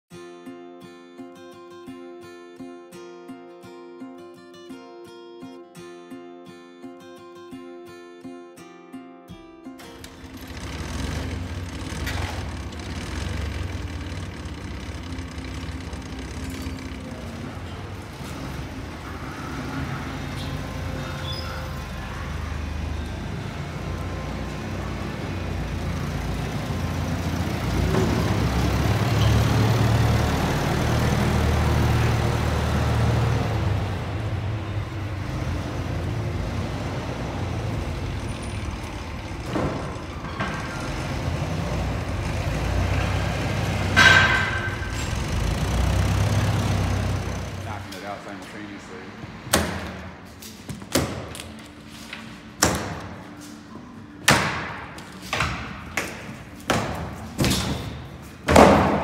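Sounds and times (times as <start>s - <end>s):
forklift engine humming: 9.8s - 50.7s.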